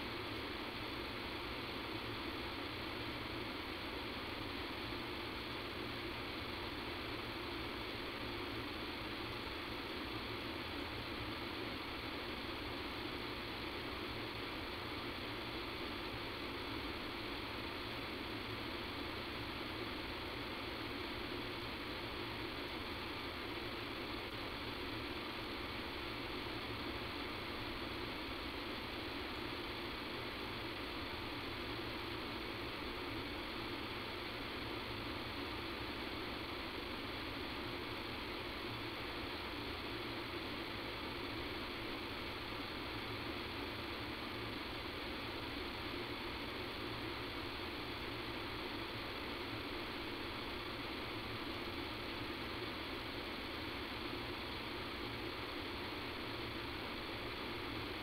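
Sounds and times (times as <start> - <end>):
telephone line hiss and hum: 0.0 - 58.0.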